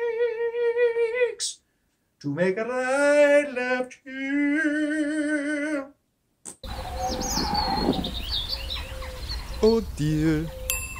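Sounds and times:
birds chirping: 6.6s - 10.9s.

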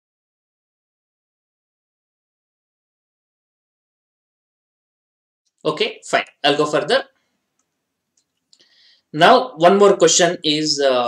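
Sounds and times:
faint clicks: 7.5s - 8.7s
soft breath in: 8.6s - 9.1s.

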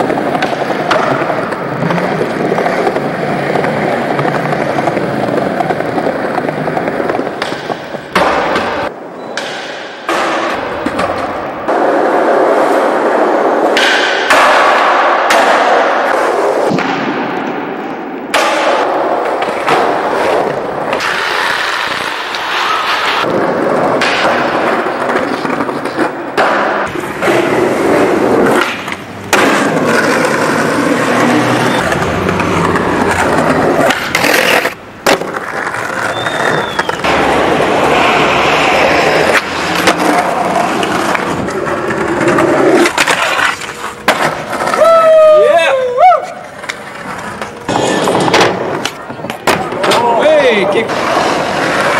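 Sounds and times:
skateboard pops and landings: 0.0s - 3.0s, 4.1s - 30.8s, 31.6s - 44.8s
skateboard wheels rolling on concrete: 0.0s - 51.9s.

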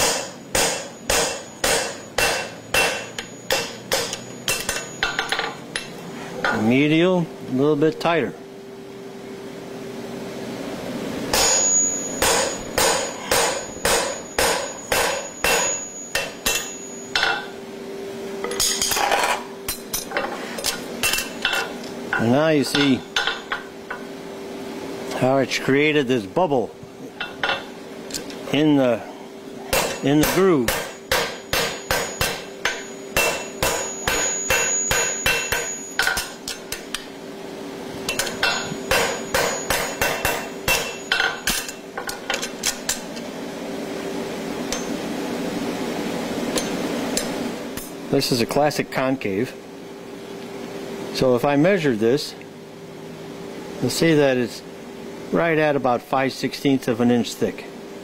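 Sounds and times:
hammer striking steel punch: 0.0s - 5.9s, 11.3s - 17.5s, 29.7s - 37.1s, 38.1s - 41.8s.

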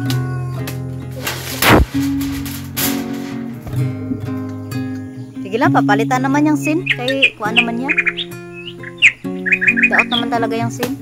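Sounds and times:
music with held notes: 0.0s - 11.0s
birds chirping: 4.1s - 11.0s.

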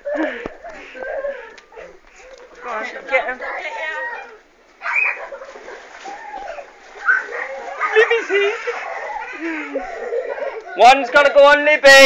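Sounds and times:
faint children's voices: 0.1s - 10.8s
water splashing in paddling pool: 0.6s - 11.6s.

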